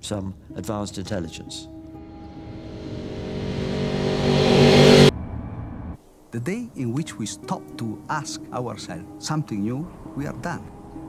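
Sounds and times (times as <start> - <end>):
droning chord: 1.8 - 6.0
rushing noise: 2.0 - 6.0.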